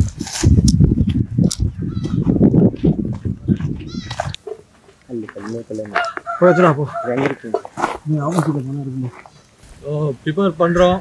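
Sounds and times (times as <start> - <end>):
rough low animal calls: 1.2 - 4.8, 5.9 - 8.1.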